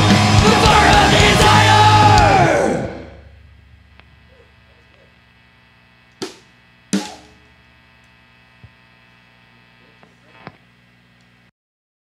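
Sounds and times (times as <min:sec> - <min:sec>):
metal band final chord: 0:00.0 - 0:04.3
faint guitar amplifier hum: 0:00.0 - 0:11.5.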